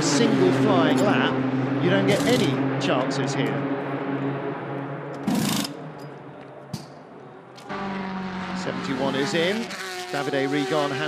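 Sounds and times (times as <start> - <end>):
engine hum: 0.0 - 11.0
race car engine: 0.0 - 11.0.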